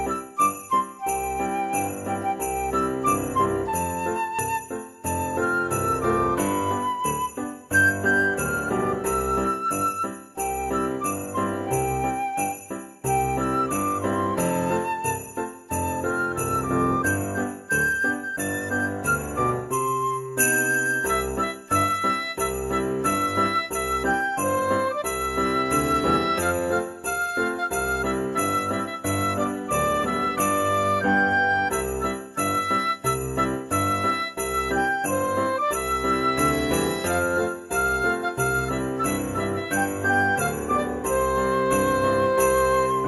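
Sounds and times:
sleigh rattle shaken on a beat: 0.0s - 43.0s
upbeat christmas music: 0.0s - 43.0s.

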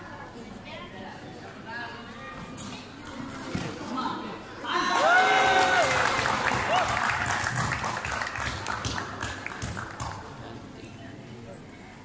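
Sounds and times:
spectators clapping: 5.0s - 10.4s.

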